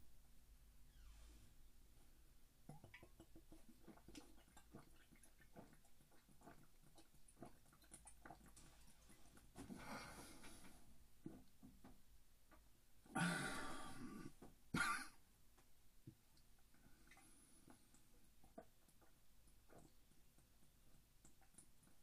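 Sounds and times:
man gulping: 2.6 - 8.8, 13.0 - 15.2
wet mouth clicks: 2.7 - 8.8
man breathing out: 13.2 - 14.3.

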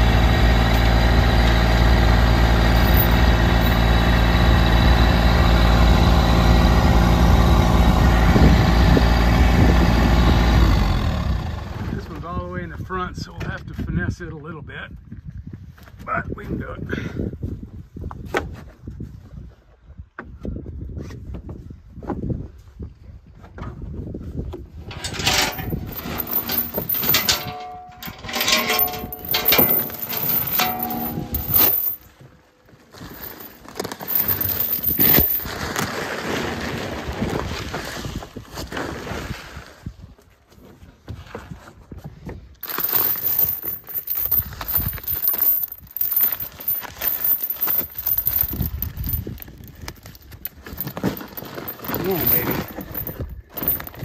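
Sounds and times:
chain links clinking: 2.7 - 3.9, 24.9 - 32.1, 33.1 - 35.5, 42.6 - 54.0
woven sack rustling and scraping: 32.9 - 37.1, 42.6 - 54.0.

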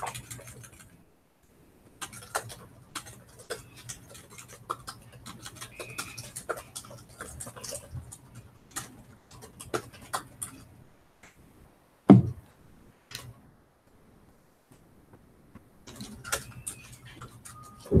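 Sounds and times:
laptop keyboard typing: 0.0 - 1.0, 1.9 - 10.7, 15.8 - 18.0
thump: 12.1 - 12.4.

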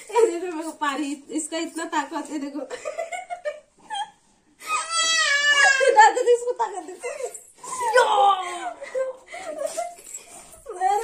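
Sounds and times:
girls squealing and laughing: 3.9 - 6.4, 7.6 - 10.2.

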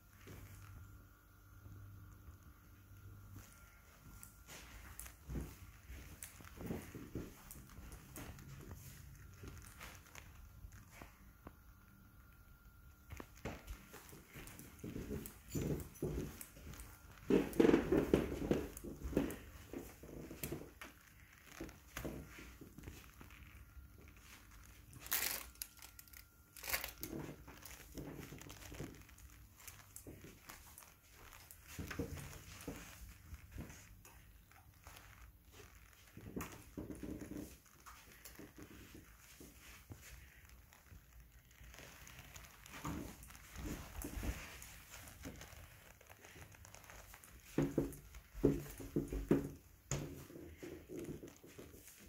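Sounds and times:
faint steady hum: 0.0 - 52.0
light footsteps: 3.3 - 11.6, 13.0 - 52.0.

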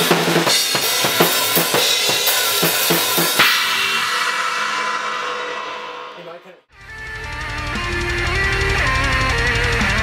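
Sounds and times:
cymbals ringing out: 0.5 - 6.5.

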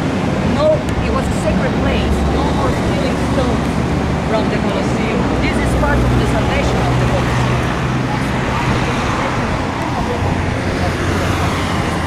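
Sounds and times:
low engine hum: 0.0 - 12.0
traffic rumble: 0.0 - 12.0
indistinct voices: 0.5 - 12.0.

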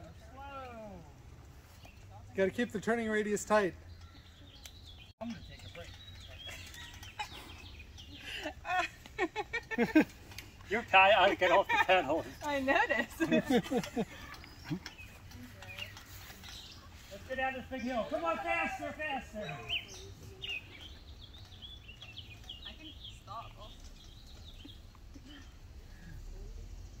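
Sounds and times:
birds chirping: 0.0 - 26.3
distant voices: 0.0 - 27.0
faint laughter: 6.4 - 10.2, 13.0 - 14.9.

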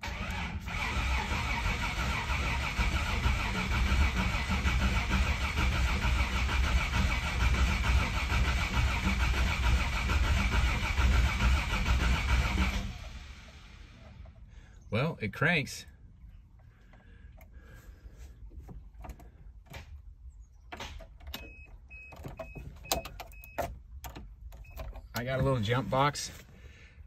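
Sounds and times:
engine cranking without firing: 0.0 - 15.4, 16.2 - 27.0.

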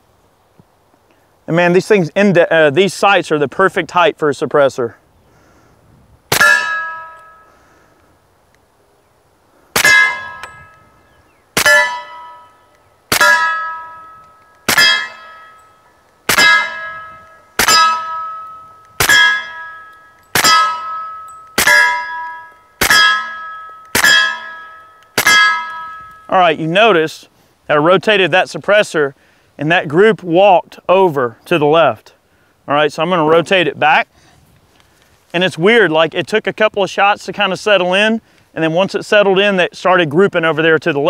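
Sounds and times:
muffled pistol shots: 6.3 - 6.8, 9.8 - 10.5, 11.6 - 12.1, 14.7 - 15.3, 16.3 - 25.9
steel target plate clanging: 6.3 - 7.5, 9.8 - 10.8, 11.6 - 26.3.

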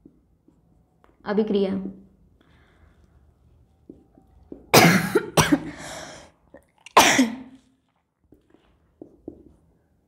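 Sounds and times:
woman coughing: 4.7 - 5.8, 7.0 - 7.6.

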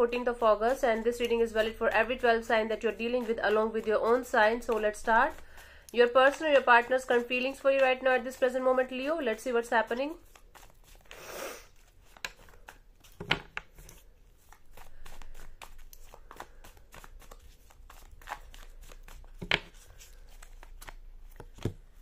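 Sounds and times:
cards being shuffled: 0.0 - 22.0.

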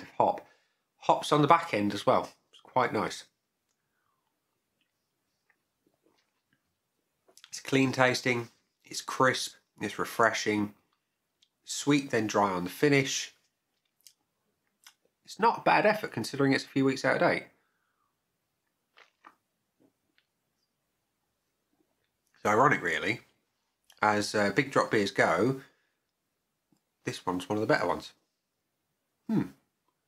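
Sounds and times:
mouth clicks and lip smacks: 3.6 - 7.6, 13.4 - 15.2, 18.6 - 20.7.

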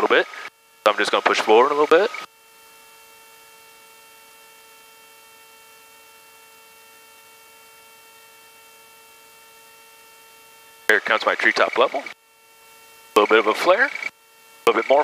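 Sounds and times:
faint steady intercom hum: 0.0 - 2.8, 4.6 - 15.0.

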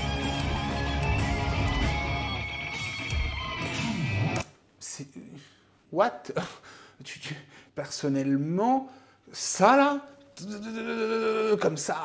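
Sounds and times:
band playing guitar bass and drums: 0.0 - 4.4.

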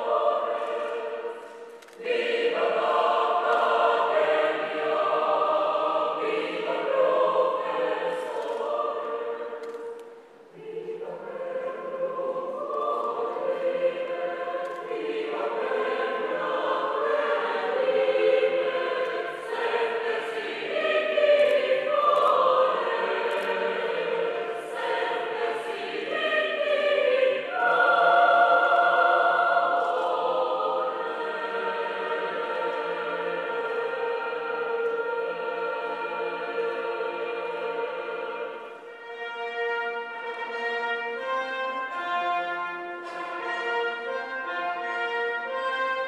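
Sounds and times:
choir singing: 0.0 - 46.0.

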